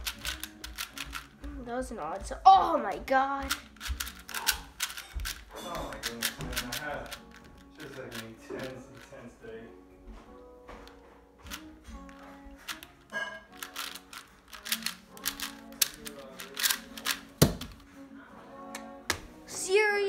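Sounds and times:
puzzle cube clicking: 0.0s - 1.5s, 3.4s - 9.1s, 11.5s - 17.8s.

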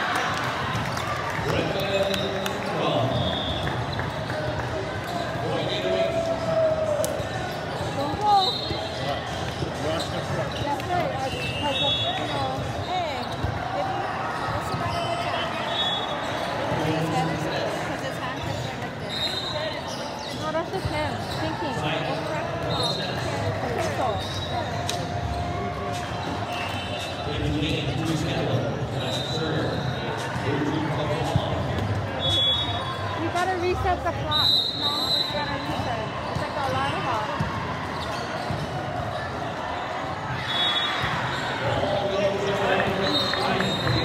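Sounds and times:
babble of voices in a hall: 0.0s - 44.0s.

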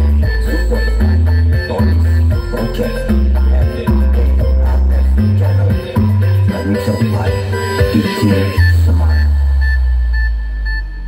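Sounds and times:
deep bass note: 0.0s - 11.0s
short high beeps: 4.4s - 11.0s.

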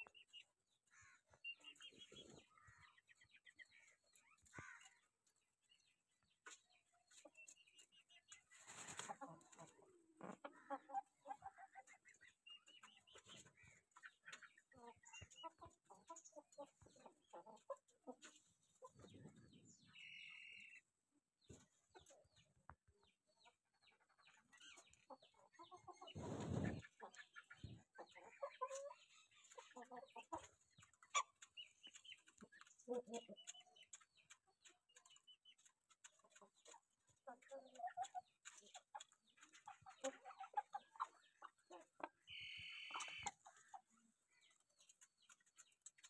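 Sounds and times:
chickens clucking: 0.0s - 46.0s.

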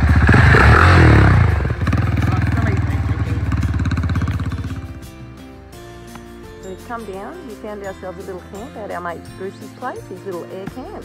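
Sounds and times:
motorcycle engine passing by: 0.0s - 5.6s
music: 2.5s - 11.0s.

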